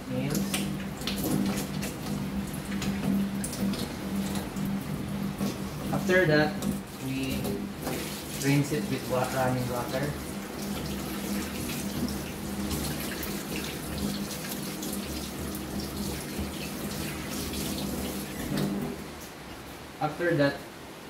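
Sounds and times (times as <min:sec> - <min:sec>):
tap water running into steel sink: 0:00.1 - 0:19.0.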